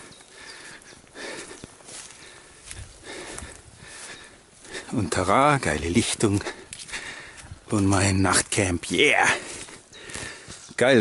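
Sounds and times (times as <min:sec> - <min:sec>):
rustling through shrubs and grass: 0:00.0 - 0:11.0
soft footsteps: 0:00.0 - 0:11.0.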